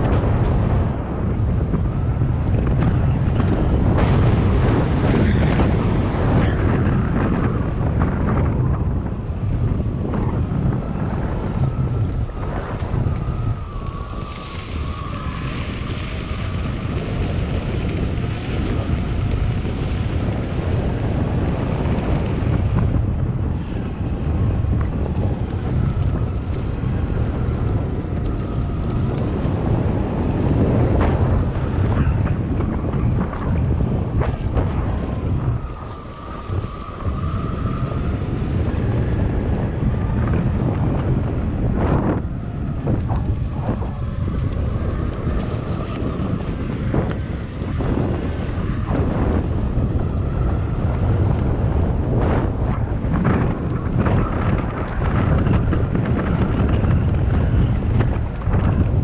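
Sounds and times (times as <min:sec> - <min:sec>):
wheels rumbling on gravel: 0:00.0 - 0:59.0
wind buffeting microphone: 0:00.0 - 0:59.0.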